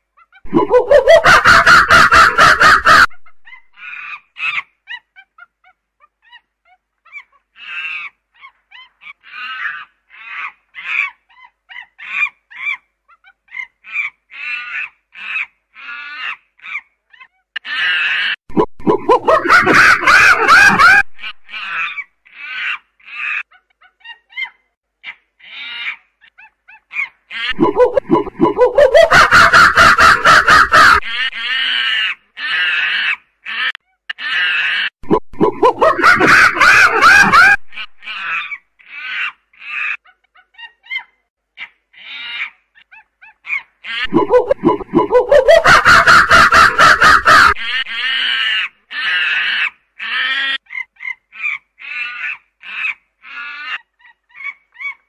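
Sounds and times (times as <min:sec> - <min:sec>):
primate screaming: 0:17.6 - 0:23.4, 0:27.3 - 0:39.9, 0:43.8 - 0:50.6.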